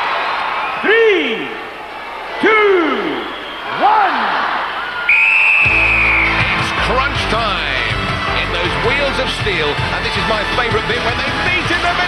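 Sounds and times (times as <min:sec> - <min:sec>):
long high whistle blast: 0:05.0 - 0:06.6
loud music with heavy bass: 0:05.7 - 0:12.0.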